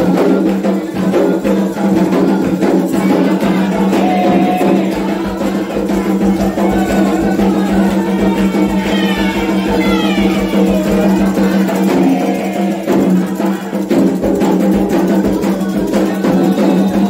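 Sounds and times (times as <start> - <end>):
hand drums beating: 0.0 - 17.0.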